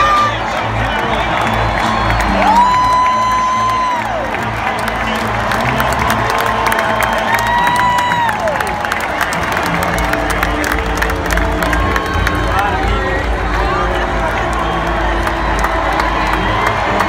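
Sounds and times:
crowd cheering: 0.0s - 17.0s
music over stadium loudspeakers: 0.0s - 17.0s.

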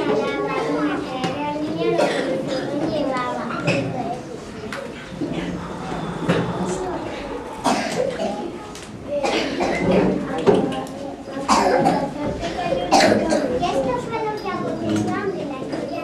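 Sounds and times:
young children chattering: 0.0s - 16.0s
sudden loud voice bursts: 5.0s - 9.1s.

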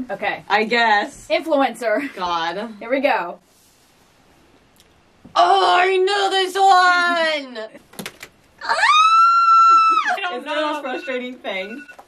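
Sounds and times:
woman screaming: 8.6s - 10.4s.

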